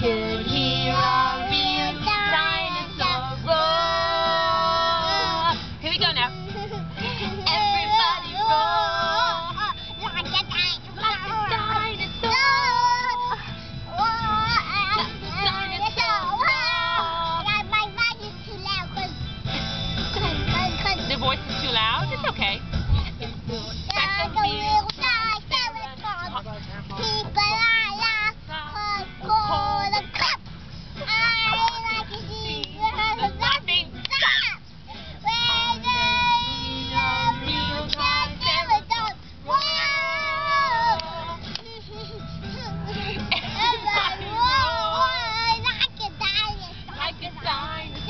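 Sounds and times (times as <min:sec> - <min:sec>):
woman singing along: 0:00.0 - 0:18.1, 0:20.2 - 0:30.4, 0:35.2 - 0:41.8, 0:42.9 - 0:48.0
car rumble: 0:00.0 - 0:48.0
toddler singing: 0:07.4 - 0:19.2, 0:31.0 - 0:34.6, 0:35.2 - 0:46.8.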